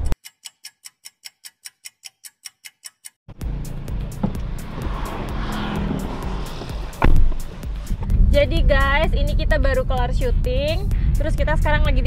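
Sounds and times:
rapid even ticking: 0.2 - 5.6
car cabin rumble while driving: 3.3 - 12.0.

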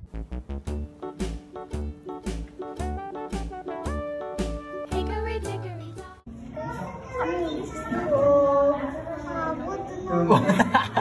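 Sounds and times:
music: 0.0 - 6.3.

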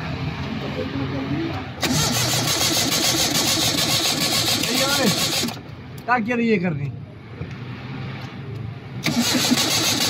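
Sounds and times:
engine cranking on starter: 1.8 - 5.7, 9.0 - 10.0.

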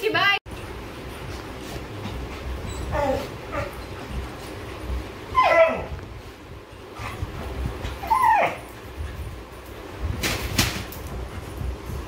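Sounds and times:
dog whining: 2.6 - 4.0, 5.3 - 6.0, 7.9 - 8.7
dogs yipping: 5.3 - 5.9, 7.9 - 8.7.

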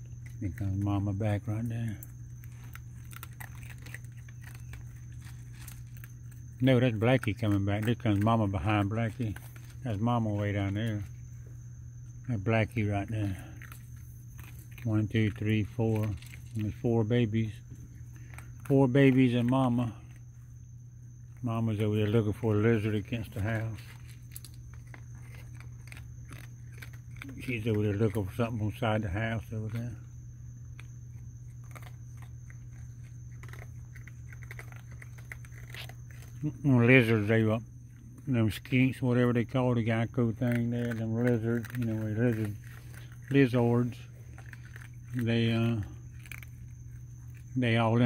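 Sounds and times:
raccoons crunching food: 0.0 - 48.0
steady low hum: 0.0 - 48.0.

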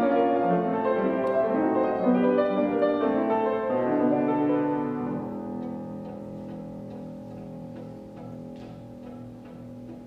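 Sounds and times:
piano trio playing chamber music: 0.0 - 10.0.

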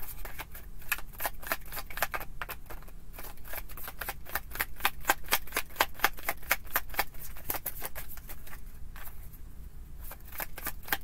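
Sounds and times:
cards being shuffled: 0.0 - 9.3, 10.0 - 11.0.

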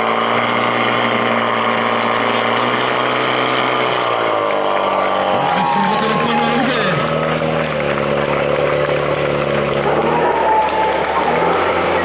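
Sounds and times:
pump engine running at high speed: 0.0 - 12.0.

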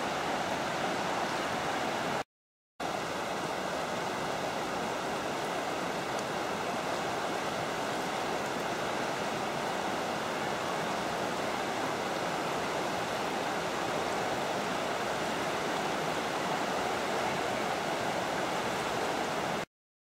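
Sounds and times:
river rapids rushing: 0.0 - 2.2, 2.8 - 19.7.

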